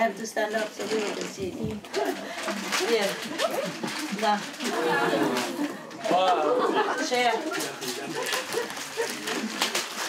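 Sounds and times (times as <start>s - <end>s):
people talking at once: 0.8s - 8.3s.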